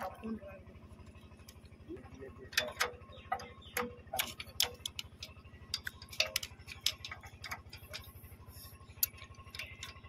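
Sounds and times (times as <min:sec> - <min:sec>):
faint low pulsing hum: 0:00.0 - 0:10.0
metal clicks and taps of spanner: 0:02.5 - 0:10.0.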